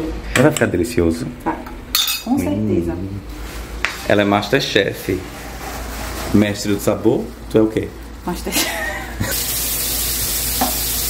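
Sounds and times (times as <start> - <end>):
shrimp sizzling in a pan: 9.3 - 11.0.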